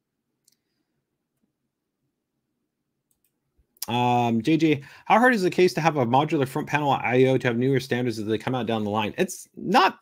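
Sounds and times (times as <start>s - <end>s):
faint mouse clicks: 0.4s - 1.5s, 3.0s - 3.9s.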